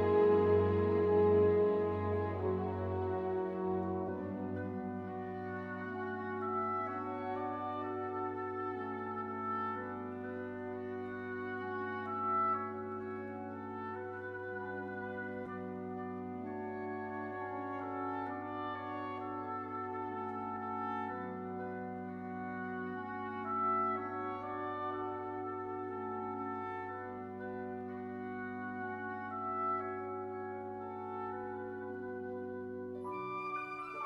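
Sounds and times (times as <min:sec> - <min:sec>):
orchestra playing sustained chords: 0:00.0 - 0:34.0.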